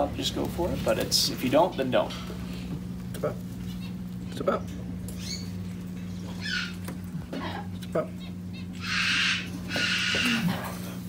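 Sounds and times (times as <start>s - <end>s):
low room hum: 0.0s - 11.0s
parrot squeaking: 5.2s - 5.6s, 6.3s - 6.8s, 8.2s - 10.5s.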